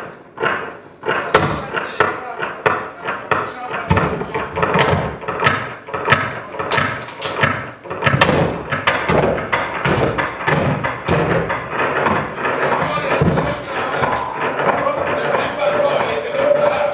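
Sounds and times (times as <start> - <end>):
amplified object knocking and clattering: 0.0 - 16.9.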